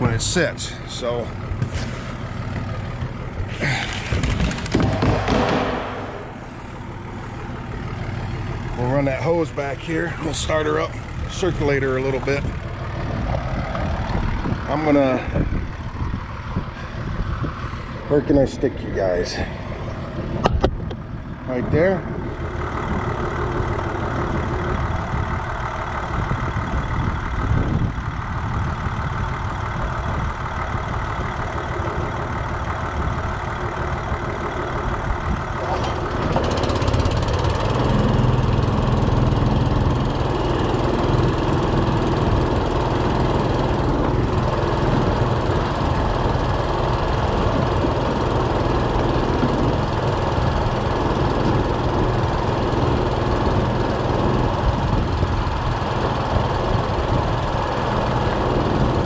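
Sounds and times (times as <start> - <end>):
engine idling: 0.0 - 59.0
small pump engine running: 0.0 - 59.0.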